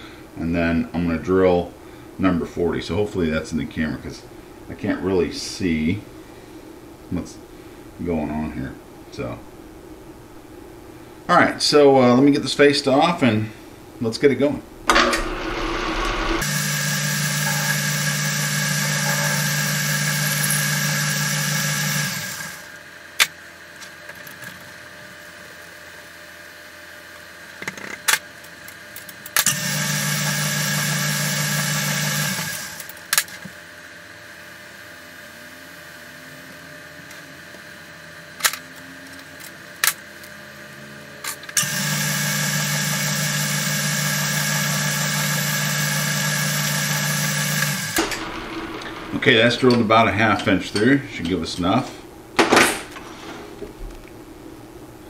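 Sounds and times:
metal lathe humming: 14.9s - 22.7s, 29.5s - 32.9s, 41.6s - 51.0s.

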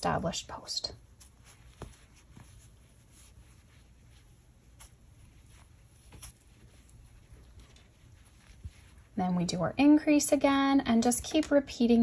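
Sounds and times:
crochet hook rustling yarn: 0.0s - 11.6s.

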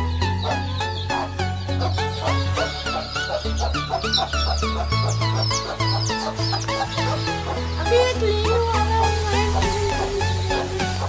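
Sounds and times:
background music with bass line: 0.0s - 11.0s
chicks peeping: 0.0s - 11.0s.

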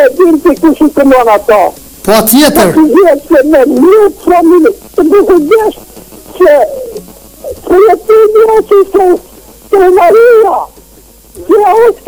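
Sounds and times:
person talking: 0.0s - 10.7s.

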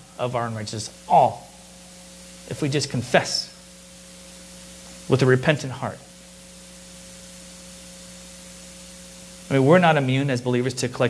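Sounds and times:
person speaking: 0.0s - 1.7s, 2.4s - 3.6s, 5.1s - 6.1s
faint constant hum: 0.0s - 11.0s
steady background hiss: 0.0s - 11.0s.

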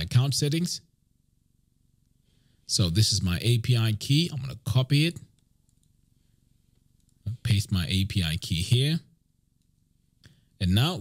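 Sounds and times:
person speaking: 2.7s - 5.4s, 7.2s - 9.1s, 10.6s - 11.0s.

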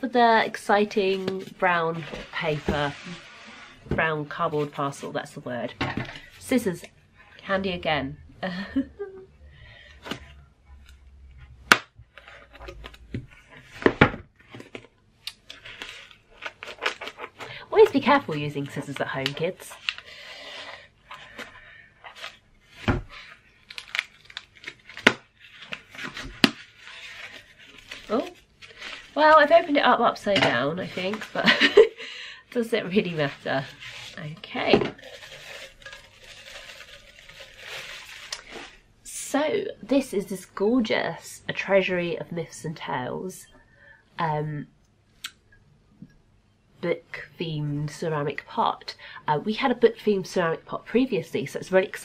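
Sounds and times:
bubble wrap rustling and crinkling: 0.5s - 5.6s, 12.1s - 38.9s
crackles of tape and card: 15.2s - 20.1s, 22.0s - 29.8s, 33.0s - 38.8s.

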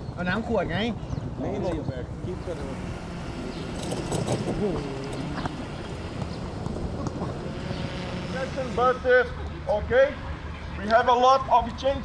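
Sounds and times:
faint distant voices: 0.2s - 12.0s.

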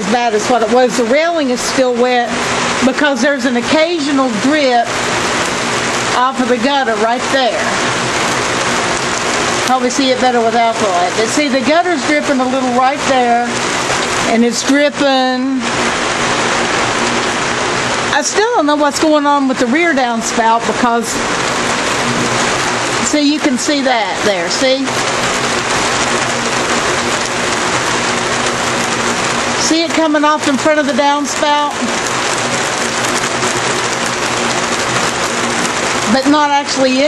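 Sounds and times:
steady rain falling: 0.0s - 37.0s
water running off gutter: 0.0s - 37.0s.

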